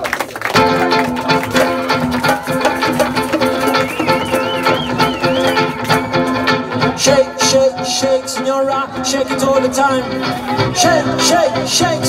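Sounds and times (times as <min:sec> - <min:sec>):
guitar: 0:00.4 - 0:12.0
upright bass: 0:00.6 - 0:12.0.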